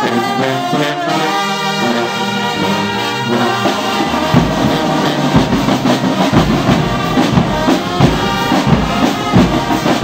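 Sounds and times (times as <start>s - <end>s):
brass band playing: 0.0s - 10.0s
drum beat: 3.5s - 10.0s.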